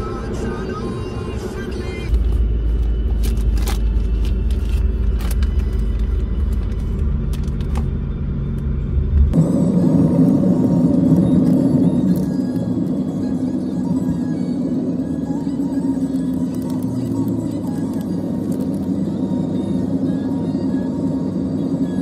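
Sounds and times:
road rumble inside car: 0.0s - 22.0s.

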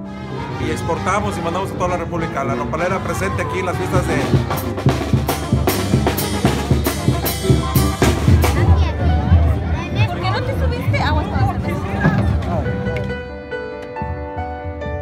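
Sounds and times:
trumpets: 0.0s - 10.6s
tubas: 0.0s - 13.6s
brass band music: 0.0s - 15.0s
steady drumbeat: 3.7s - 12.9s.

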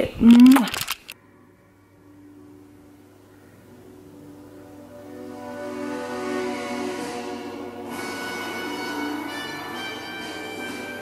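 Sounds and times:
horror tv theme music from television: 1.1s - 11.0s.

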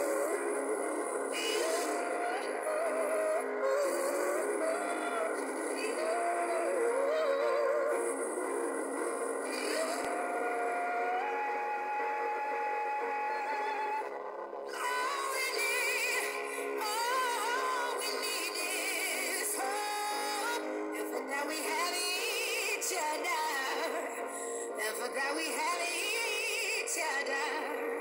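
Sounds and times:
sustained accompaniment: 0.0s - 24.9s
person singing ornamented line: 0.0s - 28.0s.

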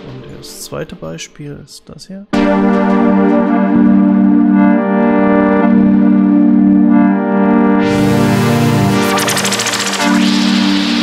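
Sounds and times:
held synthesizer chord: 2.4s - 11.0s
bright hissy synth layer: 8.2s - 11.0s.

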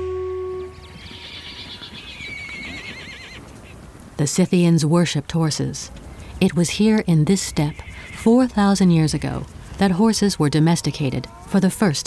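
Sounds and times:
horses whinnying: 0.8s - 3.8s, 7.3s - 8.4s
galloping hoofbeats: 0.8s - 3.9s, 6.7s - 11.5s.

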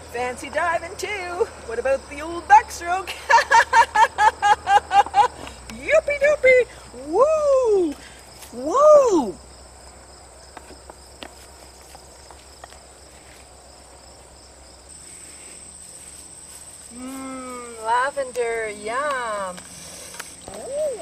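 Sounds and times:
insect trill: 0.0s - 21.0s
woman laughing: 3.1s - 5.6s
woman humming: 16.9s - 18.0s, 20.5s - 21.0s.

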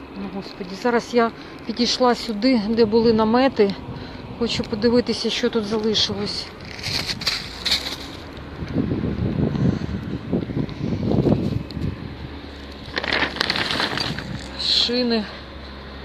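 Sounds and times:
plastic sheeting crunching: 12.8s - 14.6s.

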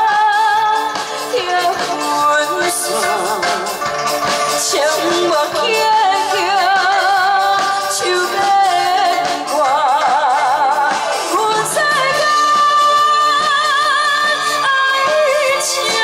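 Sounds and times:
live band playing: 0.0s - 16.0s
woman singing into microphone: 0.0s - 16.0s.

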